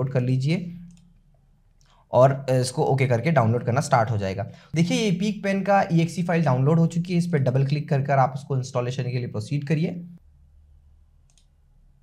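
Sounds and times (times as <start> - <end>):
computer mouse click: 0.8 - 1.4, 11.2 - 11.6.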